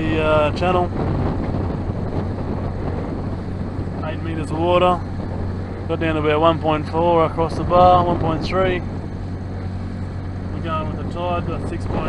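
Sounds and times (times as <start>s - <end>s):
boat low hum: 0.0s - 12.0s
wind buffeting microphone: 0.0s - 12.0s.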